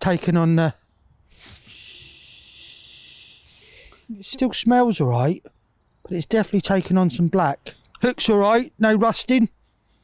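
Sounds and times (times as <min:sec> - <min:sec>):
person sniffing: 0:01.3 - 0:04.2.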